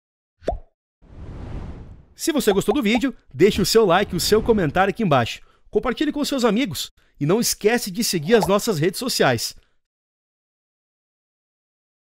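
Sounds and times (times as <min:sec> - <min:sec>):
pop sound effect rising pitch: 0:00.4 - 0:00.7.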